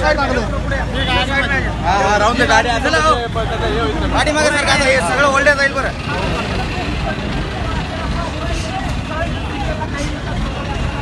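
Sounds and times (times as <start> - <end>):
many people talking: 0.0 - 11.0.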